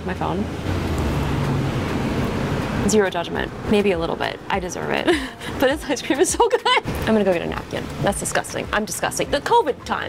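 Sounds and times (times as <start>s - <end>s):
steady rushing noise: 0.4s - 10.0s.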